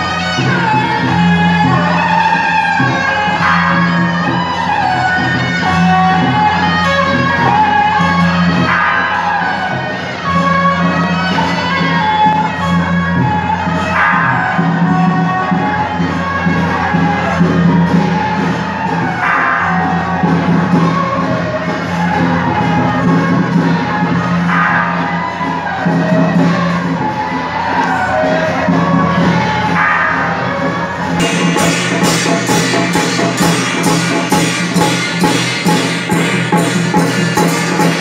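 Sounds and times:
crowd shouts: 0:00.0 - 0:38.0
hand cymbals and drums: 0:00.0 - 0:38.0.

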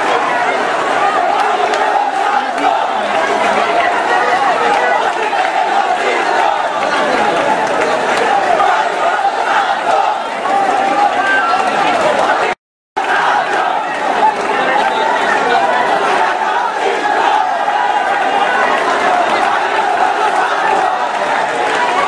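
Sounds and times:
crowd shouting and talking: 0:00.0 - 0:22.0.

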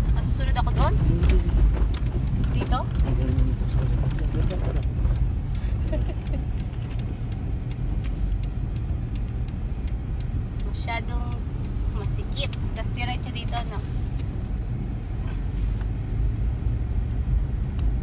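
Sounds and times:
car engine and road rumble: 0:00.0 - 0:18.0.

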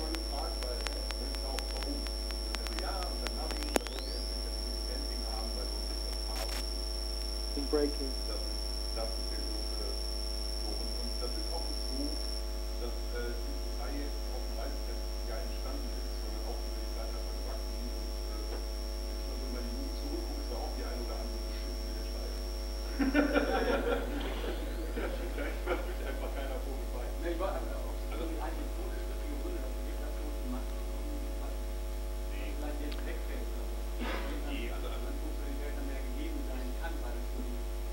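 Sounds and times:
electrical mains hum: 0:00.0 - 0:37.9
people talking: 0:00.0 - 0:37.9
thin high whine: 0:00.0 - 0:37.9.

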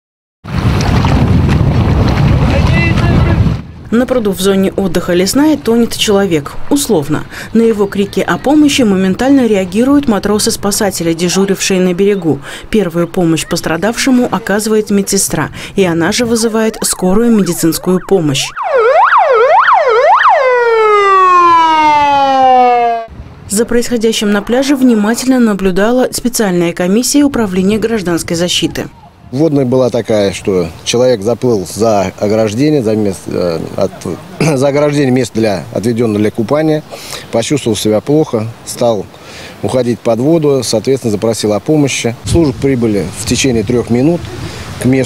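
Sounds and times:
wind buffeting microphone: 0:00.5 - 0:30.8, 0:42.2 - 0:45.0
water splashing: 0:00.5 - 0:45.0
ambulance siren wailing: 0:16.2 - 0:23.1.

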